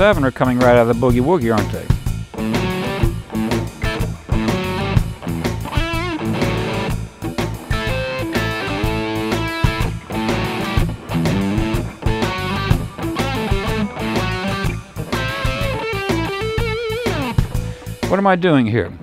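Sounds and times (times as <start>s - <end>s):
electric guitar riff: 0.0s - 18.1s
shuffle backing track with bass: 0.0s - 18.3s.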